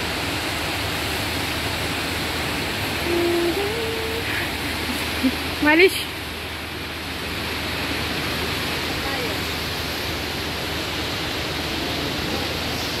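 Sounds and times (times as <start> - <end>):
indoor fountain water rushing: 0.0 - 13.0.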